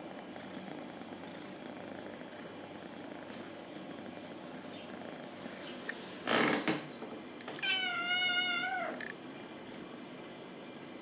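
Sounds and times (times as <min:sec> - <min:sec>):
kitten meowing: 0:07.6 - 0:09.0.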